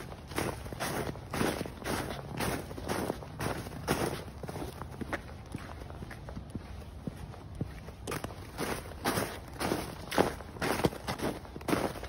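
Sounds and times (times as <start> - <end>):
boots crunching in snow: 0.0 - 12.0
footsteps on wet pavement: 0.0 - 12.0.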